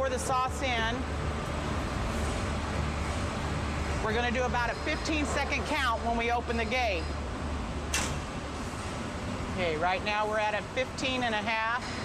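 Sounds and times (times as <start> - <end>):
room noise with low hum: 0.0 - 12.0
spring-loaded gate snap: 7.9 - 8.3.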